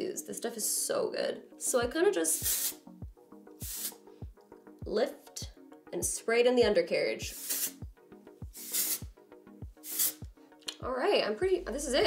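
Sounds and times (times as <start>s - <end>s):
background music with steady beat: 0.0s - 12.0s
aerosol spray hissing: 2.3s - 2.9s, 3.6s - 4.0s, 7.3s - 7.9s, 8.5s - 9.1s, 9.8s - 10.3s.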